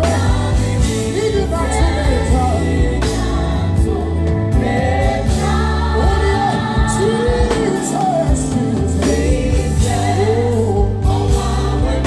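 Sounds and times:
keyboard-led band: 0:00.0 - 0:12.0
man singing into a microphone: 0:06.9 - 0:11.2.

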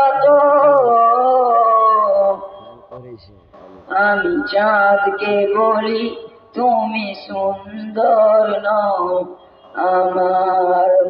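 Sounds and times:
boy singing unaccompanied: 0:03.8 - 0:11.0.

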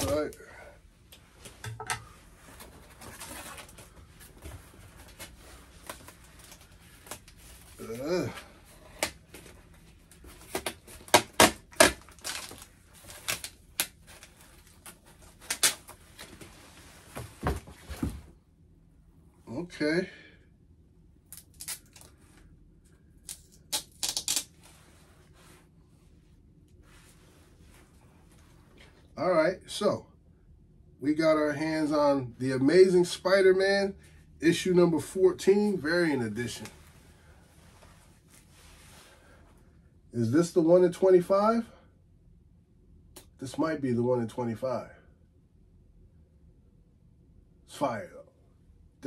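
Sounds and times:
scraping and rustling handling: 0:01.0 - 0:11.2, 0:11.8 - 0:18.4
plastic and cardboard crinkling: 0:02.4 - 0:18.3
packing tape pulled off cardboard: 0:08.9 - 0:16.4, 0:23.2 - 0:24.8.

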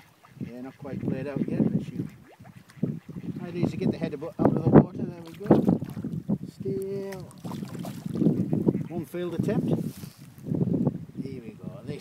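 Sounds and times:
fish splashing at the surface: 0:05.2 - 0:06.2, 0:07.1 - 0:08.4.

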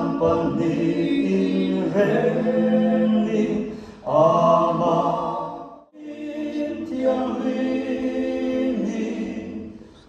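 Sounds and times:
a cappella group singing chords: 0:00.0 - 0:10.0.

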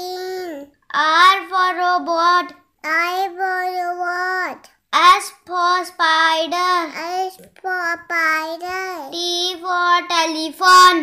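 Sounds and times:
voice singing a phonics song: 0:00.0 - 0:11.0.

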